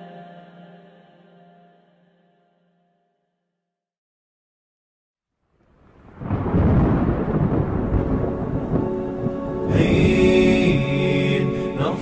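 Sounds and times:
higher voices singing: 0:00.0 - 0:02.1, 0:09.6 - 0:12.0
heavy rain: 0:05.6 - 0:12.0
rolling thunder: 0:05.8 - 0:11.2.

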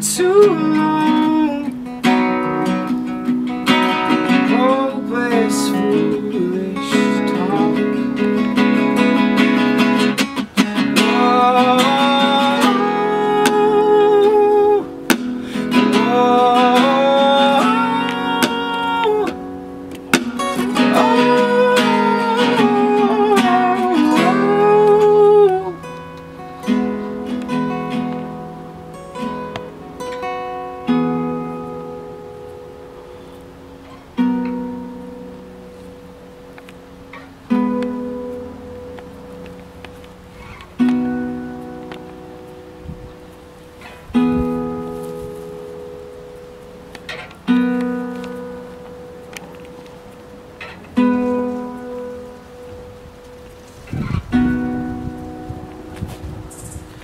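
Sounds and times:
man singing long notes: 0:00.0 - 0:01.9, 0:04.1 - 0:08.2, 0:10.9 - 0:19.8, 0:20.4 - 0:25.9
acoustic guitars strummed: 0:00.0 - 0:57.0.

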